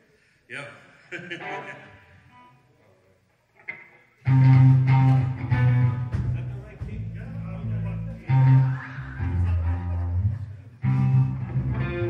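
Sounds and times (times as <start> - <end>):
live rock band playing: 4.2 - 7.4, 8.0 - 12.0.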